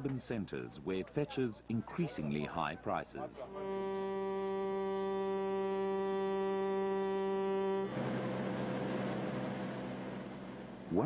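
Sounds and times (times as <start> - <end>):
boat horn blast: 3.5 - 11.0.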